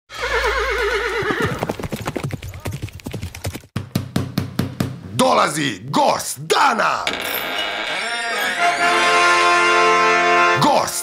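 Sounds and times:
horse whinny: 0.1s - 1.8s
hoofbeats clip-clopping: 0.4s - 3.7s.

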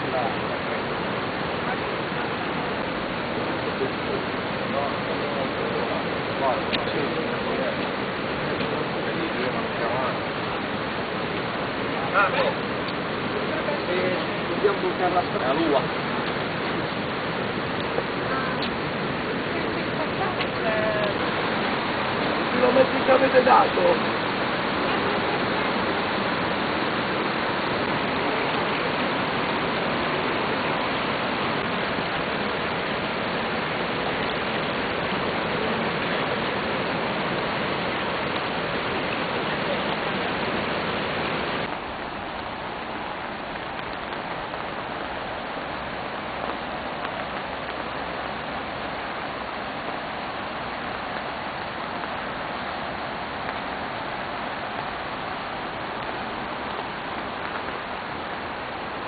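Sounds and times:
outdoor noise: 0.0s - 59.0s
torrent of water rushing: 0.0s - 59.0s.

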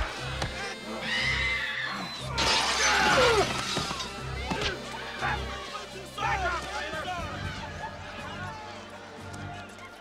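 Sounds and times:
loud shattering crash: 2.4s - 4.1s.

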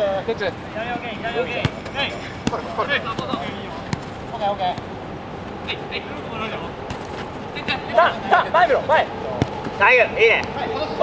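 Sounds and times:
players shouting: 0.8s - 4.9s.

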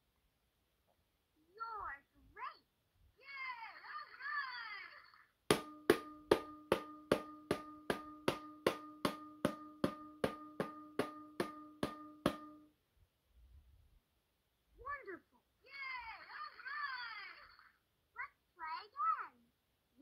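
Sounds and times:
electronic toy drum beats: 5.5s - 12.7s.

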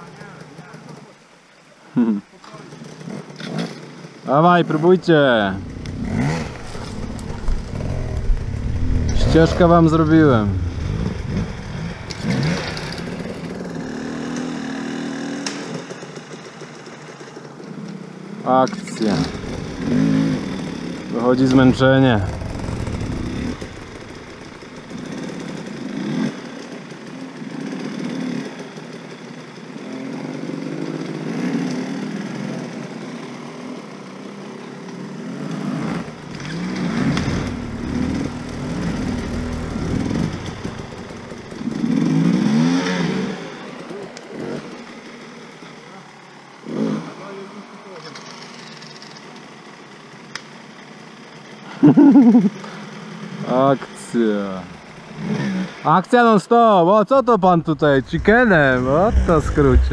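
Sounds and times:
motorcycle engines revving: 2.0s - 56.4s, 57.1s - 59.9s.

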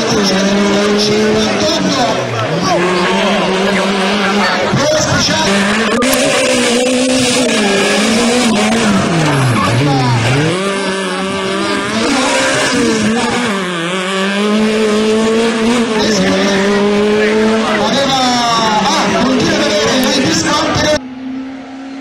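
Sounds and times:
car engine revving: 0.0s - 22.0s.

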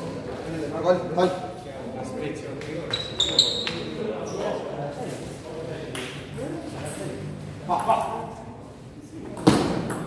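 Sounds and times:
people talking: 0.0s - 10.0s
table tennis ball bouncing: 9.4s - 10.0s.

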